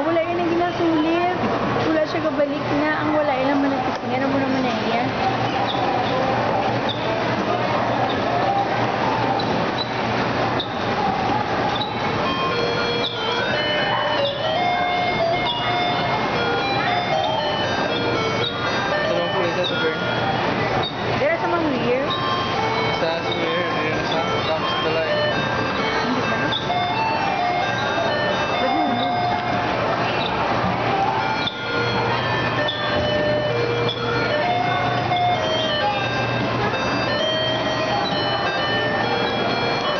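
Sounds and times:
electronic tones and jingles: 11.8 - 30.4, 31.1 - 39.9.

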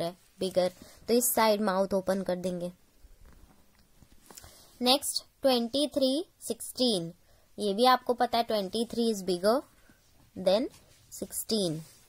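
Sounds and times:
woman speaking: 0.0 - 2.8, 4.8 - 9.7, 10.3 - 12.0.

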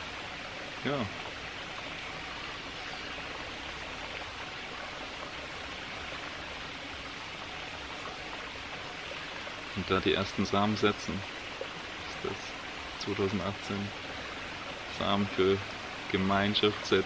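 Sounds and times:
forest ambience rushing noise: 0.0 - 17.0.

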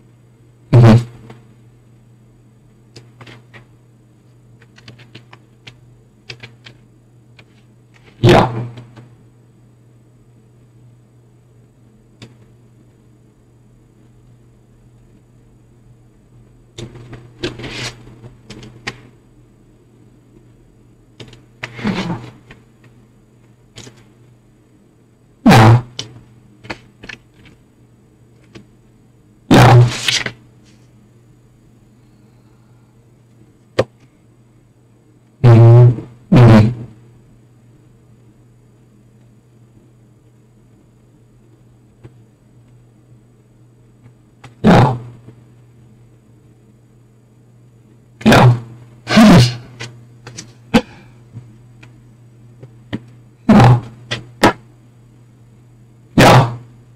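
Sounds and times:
low electrical buzz: 0.0 - 56.9
steady low hum: 0.0 - 56.9.

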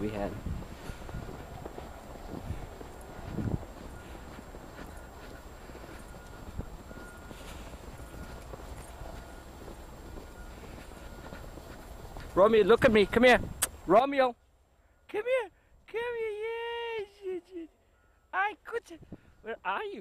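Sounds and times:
footsteps crunching through snow: 0.0 - 13.2.

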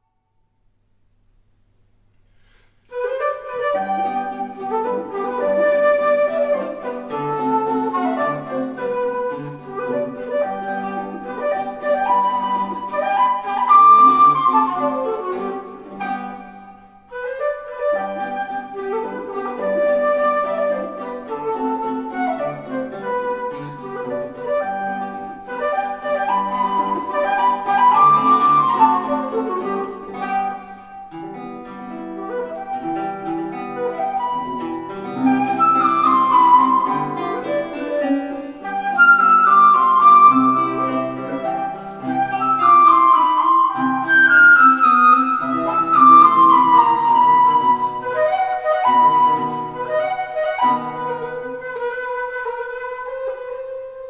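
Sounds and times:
plucked guitar accompaniment: 2.4 - 54.0
wooden flute melody: 2.8 - 54.0.

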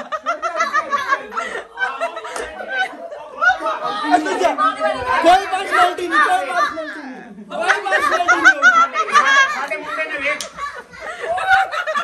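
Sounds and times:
people talking: 0.0 - 12.0
young people laughing: 0.0 - 12.0.

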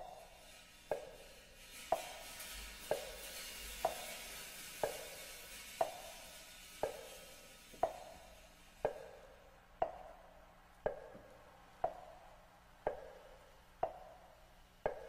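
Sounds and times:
metronome-like clicks: 0.0 - 15.0
soft hiss: 0.0 - 15.0.

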